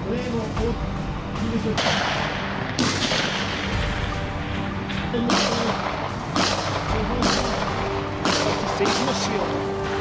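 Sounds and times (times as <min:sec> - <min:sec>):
background music: 0:00.0 - 0:10.0
rifle shot echoing: 0:01.8 - 0:04.1, 0:05.2 - 0:09.5.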